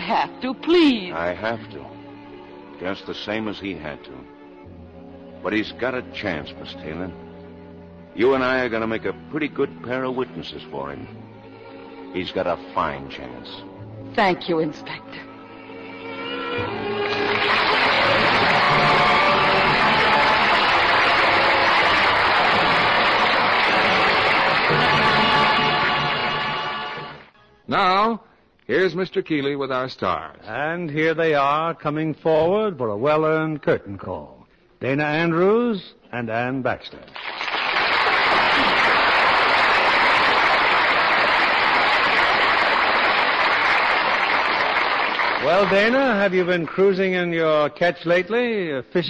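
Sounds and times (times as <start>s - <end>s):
orchestral music: 0.0s - 27.4s
audience applauding: 16.6s - 27.3s, 37.2s - 46.7s.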